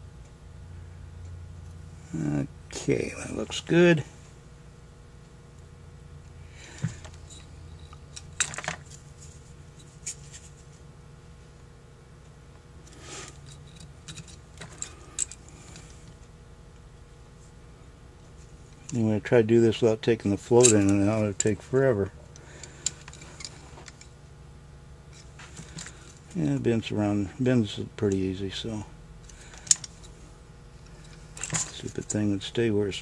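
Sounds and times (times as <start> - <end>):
steady low hum: 0.0 - 33.0
small parts clicking on metal: 13.4 - 16.0, 29.2 - 30.2.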